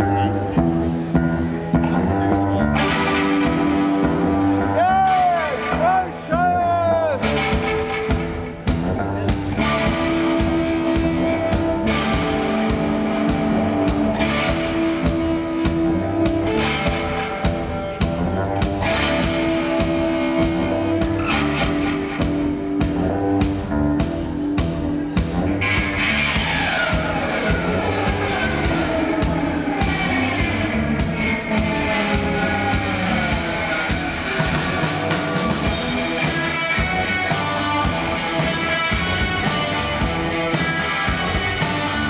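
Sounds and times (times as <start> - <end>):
punk band playing live: 0.0 - 42.0.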